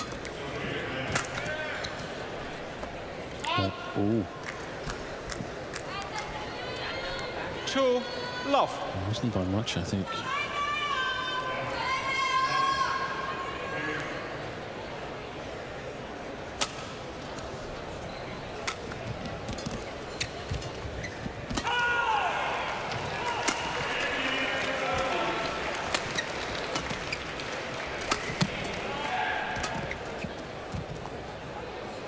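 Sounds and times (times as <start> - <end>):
murmur of crowd voices: 0.0 - 32.0
shoe squeak: 19.6 - 21.5, 29.6 - 30.5.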